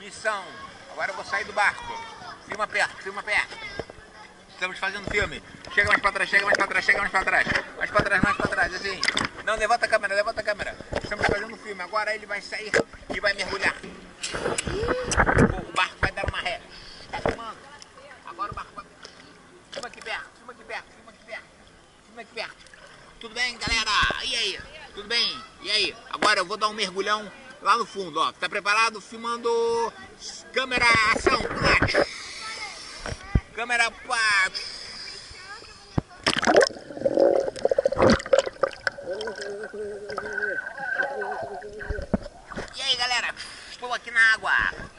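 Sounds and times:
water splashing: 5.2s - 9.8s, 36.1s - 43.7s
underwater gurgling and bubbling: 36.3s - 42.6s
man making play sounds: 39.1s - 42.1s.

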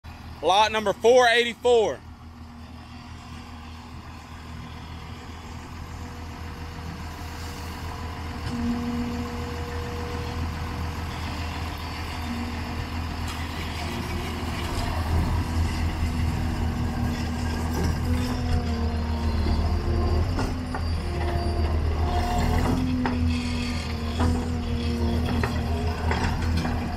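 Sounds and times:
diesel engine running: 0.0s - 26.9s
machine moving on tracks: 3.3s - 26.9s.

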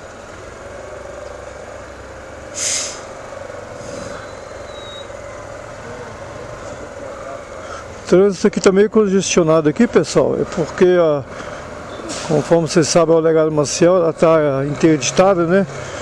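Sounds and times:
city traffic: 0.0s - 16.0s
air brakes hissing: 2.5s - 3.2s, 3.8s - 5.1s, 11.4s - 12.4s.

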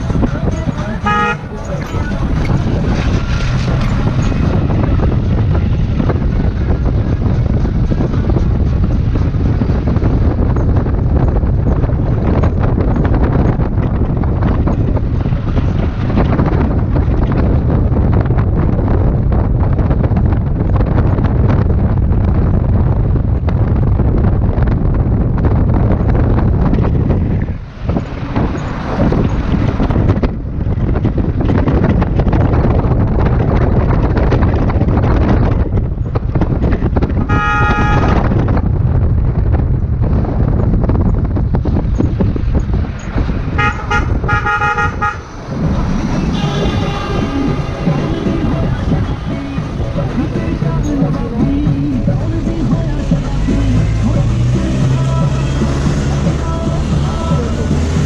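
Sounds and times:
vehicle engine and tyre rumble: 0.0s - 58.0s
wind buffeting microphone: 0.0s - 58.0s
car horn: 0.4s - 2.2s, 37.2s - 38.4s, 43.5s - 45.4s, 46.1s - 49.2s.

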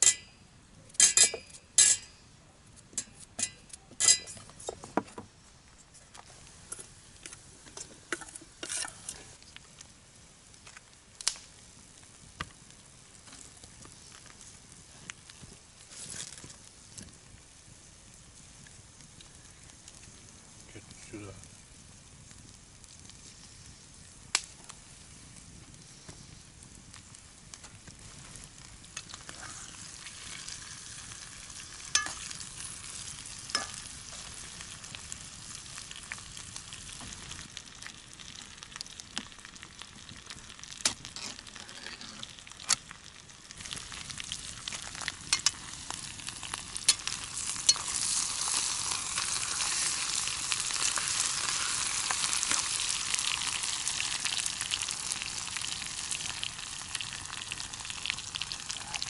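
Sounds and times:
potatoes sizzling in a pan: 6.2s - 59.0s
spoon clinking against pan: 32.0s - 32.2s.

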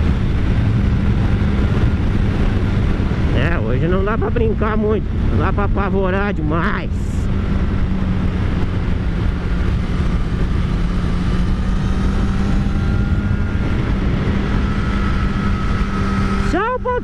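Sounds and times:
motorcycle engine running: 0.0s - 17.0s
wind noise: 0.0s - 17.0s.

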